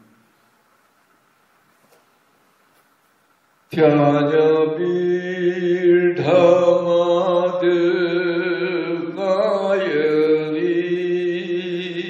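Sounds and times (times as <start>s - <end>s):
man chanting a hymn: 3.7s - 12.0s.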